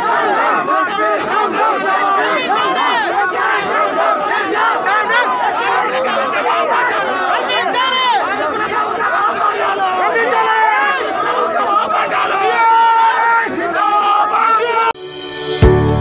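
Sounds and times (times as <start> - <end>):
crowd of men shouting: 0.0 - 15.0.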